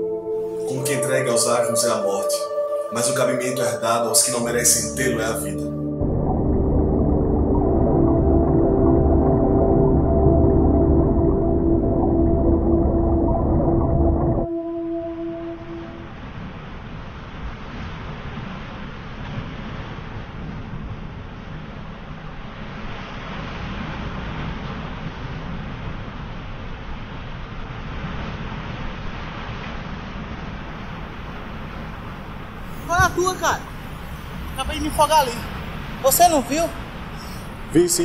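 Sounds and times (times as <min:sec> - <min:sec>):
low droning ambient sound: 0:00.0 - 0:17.4
surf: 0:00.0 - 0:38.0
wind: 0:14.4 - 0:38.0.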